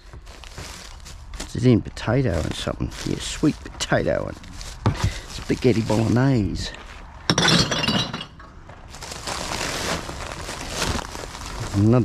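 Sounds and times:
soft rustling: 0.0s - 7.1s, 8.7s - 12.0s
glass bottles crashing onto cans: 7.3s - 8.4s.

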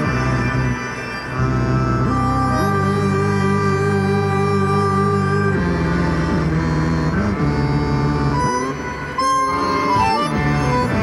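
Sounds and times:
synthesizer music through small speaker: 0.0s - 11.0s.

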